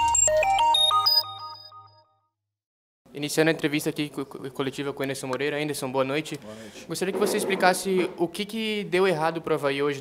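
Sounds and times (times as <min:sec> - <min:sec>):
electronic logo jingle: 0:00.0 - 0:02.3.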